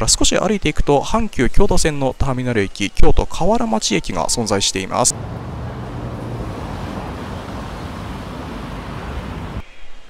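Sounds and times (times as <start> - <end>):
road noise from passing cars: 5.1 - 9.6.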